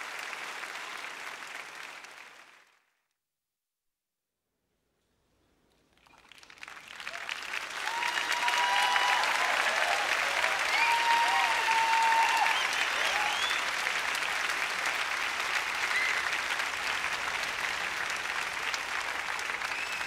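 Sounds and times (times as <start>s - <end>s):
audience applauding: 0.0s - 2.9s, 6.0s - 20.0s.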